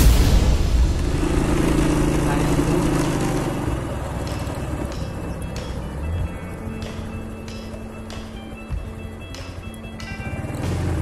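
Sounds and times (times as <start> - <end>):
background music: 0.0 - 11.0
small motorcycle engine running: 1.0 - 11.0.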